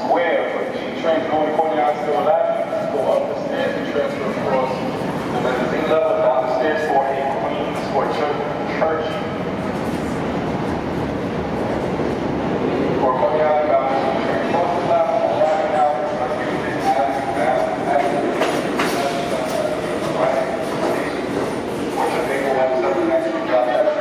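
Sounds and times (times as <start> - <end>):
subway train rumbling: 0.0 - 24.0.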